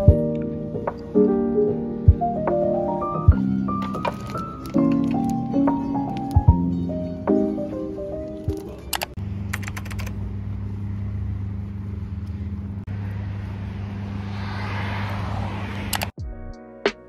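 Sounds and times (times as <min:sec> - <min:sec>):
soft lo-fi music: 0:00.0 - 0:09.2, 0:16.2 - 0:17.0
sharp clicks: 0:08.5 - 0:10.2, 0:15.9 - 0:16.1
steady low hum: 0:09.2 - 0:14.6
car passing: 0:10.2 - 0:16.2.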